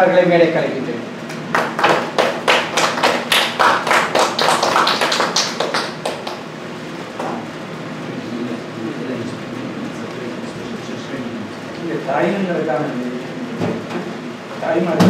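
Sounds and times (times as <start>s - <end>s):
small audience clapping: 1.3s - 6.6s.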